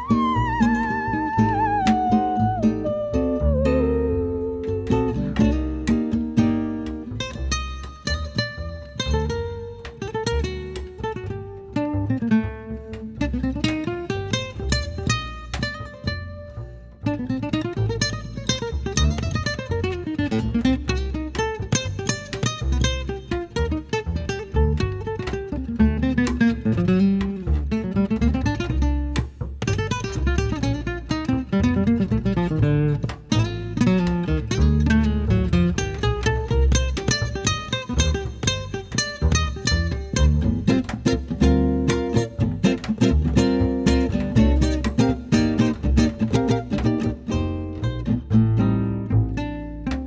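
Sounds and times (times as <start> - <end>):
acoustic guitar plucked runs: 0.0 - 50.0
plucked double bass: 0.0 - 50.0.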